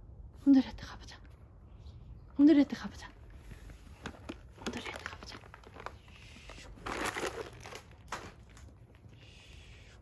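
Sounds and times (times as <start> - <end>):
crinkling rustling noise: 3.1 - 9.1.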